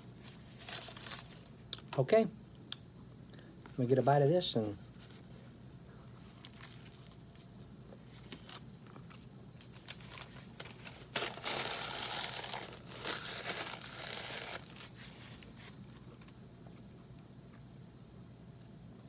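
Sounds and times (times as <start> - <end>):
paper napkin crumpling: 0.2 - 1.5, 9.6 - 16.1.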